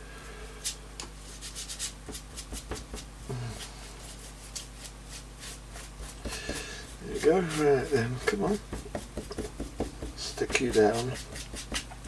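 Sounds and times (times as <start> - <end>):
glue brush scratching on paper: 1.3 - 2.9, 4.0 - 11.9.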